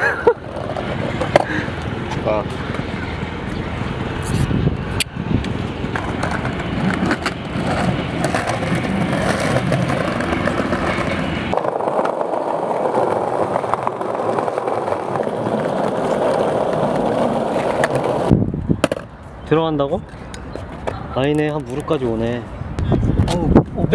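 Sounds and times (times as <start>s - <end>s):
skateboard wheels rolling on paving: 0.0s - 22.5s.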